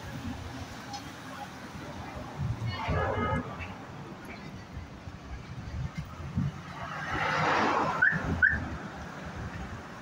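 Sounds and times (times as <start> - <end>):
vehicle rushing past: 6.5 - 9.4.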